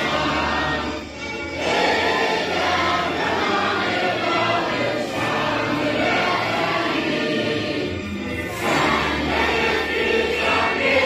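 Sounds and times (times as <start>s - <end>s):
teenage choir singing: 0.0s - 11.0s.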